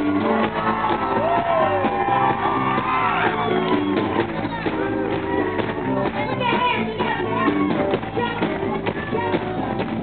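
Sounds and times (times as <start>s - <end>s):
crowd shouting and whooping: 0.0s - 9.4s
live soul band playing: 0.0s - 10.0s.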